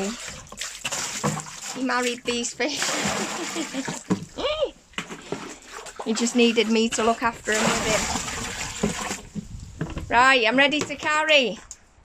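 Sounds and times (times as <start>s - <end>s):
water splashing and pouring: 0.0s - 9.8s.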